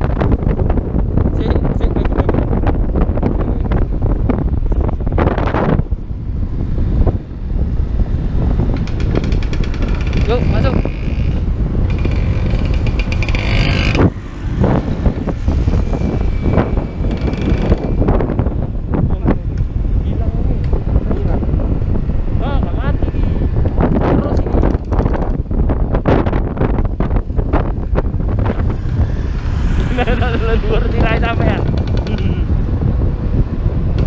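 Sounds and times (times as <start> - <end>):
road noise: 0.0 - 34.0
wind buffeting microphone: 0.0 - 34.0
scooter engine: 8.8 - 18.2, 28.0 - 32.5.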